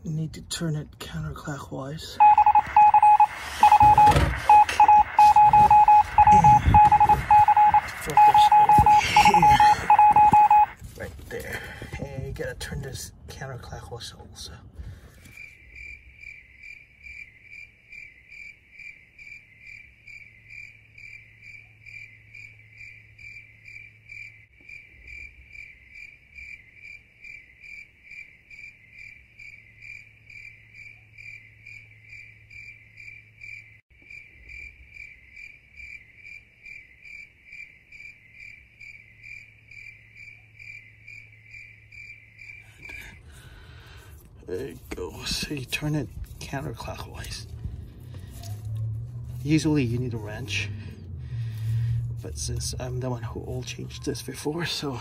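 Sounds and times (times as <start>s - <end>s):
crickets chirping: 15.3s - 44.3s.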